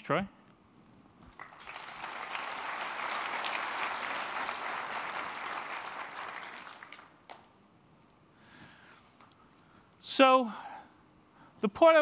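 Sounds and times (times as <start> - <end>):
audience applauding: 1.3 - 7.5.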